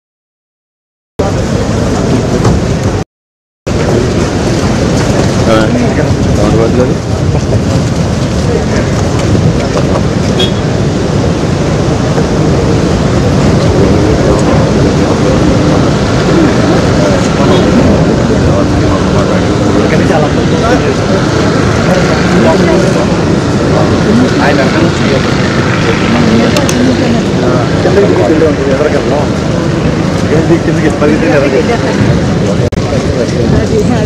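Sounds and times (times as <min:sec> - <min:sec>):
loud outdoor rumble: 0:01.2 - 0:03.0, 0:03.7 - 0:34.0
many people talking: 0:01.2 - 0:03.0, 0:03.7 - 0:34.0.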